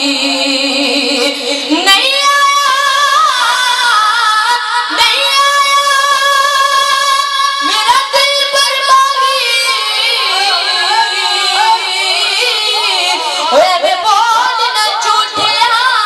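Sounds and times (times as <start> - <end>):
boy singing into a microphone: 0.0 - 16.0.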